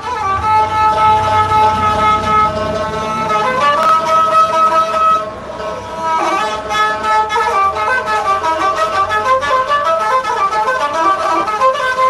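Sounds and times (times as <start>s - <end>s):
banjo accompaniment: 0.0s - 12.0s
fiddle playing slow melody: 0.0s - 12.0s.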